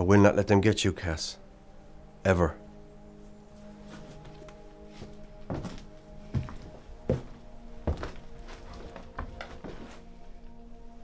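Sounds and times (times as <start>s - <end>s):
droning music score: 0.0s - 11.0s
heavy footsteps: 3.6s - 10.1s.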